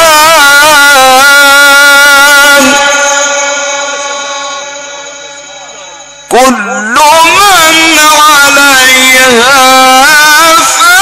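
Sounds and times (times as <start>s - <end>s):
man chanting melodically: 0.0s - 4.8s, 6.3s - 11.0s.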